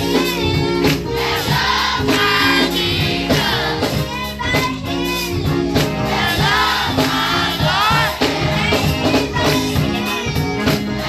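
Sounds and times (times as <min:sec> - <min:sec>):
drums steady beat: 0:00.0 - 0:11.0
children's choir singing: 0:01.1 - 0:04.4, 0:06.1 - 0:11.0
girl singing into microphone: 0:03.9 - 0:05.7, 0:09.0 - 0:10.8.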